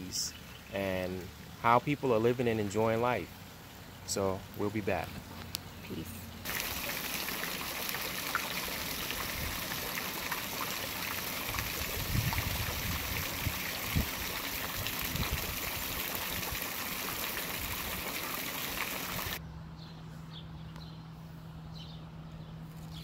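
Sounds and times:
fountain splashing into pool: 6.4s - 19.4s.

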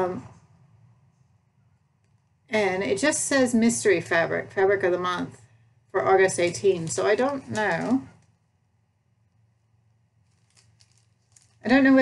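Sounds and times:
fabric rustling: 9.5s - 11.8s.

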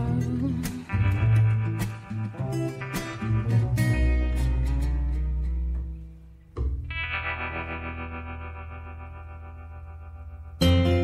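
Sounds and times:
guitar chord ringing: 0.0s - 11.0s
guitar playing: 0.0s - 11.0s.

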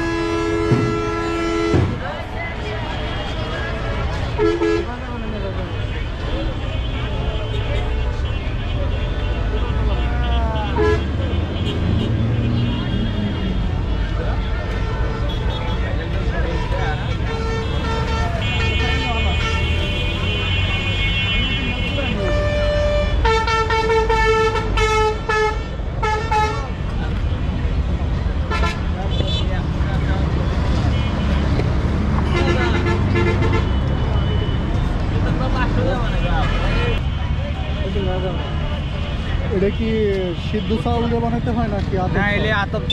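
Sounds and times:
car horn toot: 0.0s - 2.0s, 9.2s - 13.3s
vehicle horns honking: 0.0s - 2.0s, 3.0s - 5.0s, 5.8s - 13.8s, 14.4s - 26.8s, 28.5s - 29.5s, 32.2s - 34.9s, 35.7s - 37.1s
low rumble of engines: 0.0s - 42.9s.

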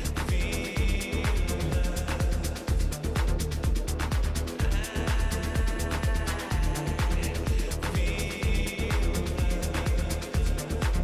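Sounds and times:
deep kick drum: 0.0s - 11.0s
techno dj mix: 0.0s - 11.0s.

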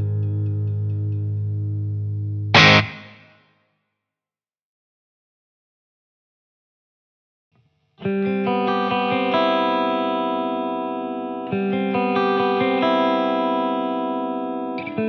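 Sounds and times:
clean electric guitar arpeggios: 0.0s - 3.2s, 8.0s - 15.0s.

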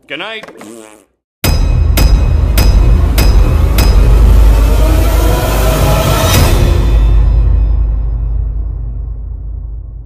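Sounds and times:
rising tone: 3.2s - 7.7s.

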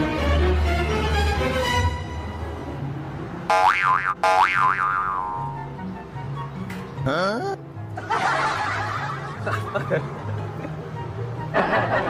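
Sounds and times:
comic swooping pitch effects: 3.5s - 5.7s
background music with bass line: 3.5s - 5.9s.

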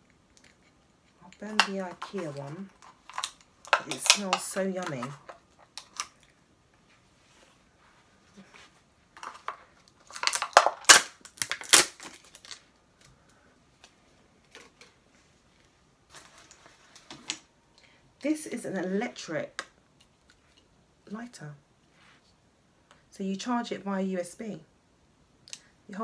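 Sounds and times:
rustling: 0.0s - 17.5s.

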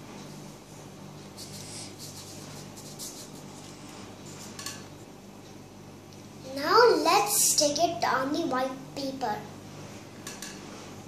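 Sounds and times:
steady low hum: 0.0s - 11.0s
glue stick rubbing on paper: 1.4s - 3.6s.

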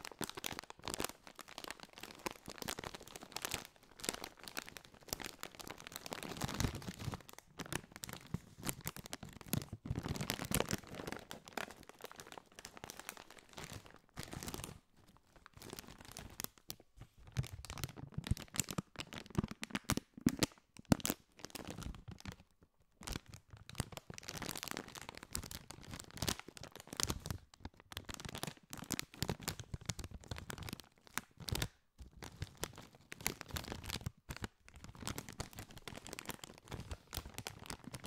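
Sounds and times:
plastic chip bag crinkling: 0.0s - 22.4s, 23.1s - 38.0s.

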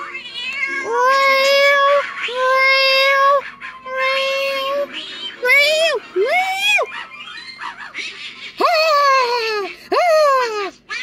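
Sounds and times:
high-pitched cartoon voice cries: 0.7s - 7.0s, 8.6s - 11.0s.

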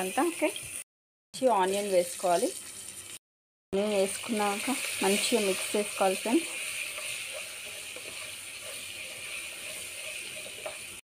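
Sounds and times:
onions sizzling in hot oil: 0.0s - 0.8s, 1.4s - 3.2s, 3.8s - 11.0s.

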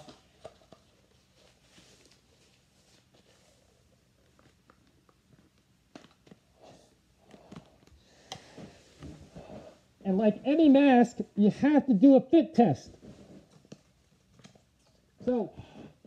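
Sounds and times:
faint clicks and rustles: 0.0s - 10.1s, 12.9s - 16.0s.

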